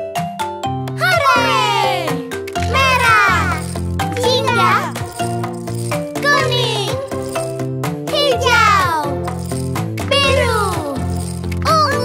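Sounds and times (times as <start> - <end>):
children's cartoon song: 0.9 - 9.4, 10.0 - 12.0
bouncy bass line: 1.0 - 12.0
rattle-like percussion: 2.3 - 12.0.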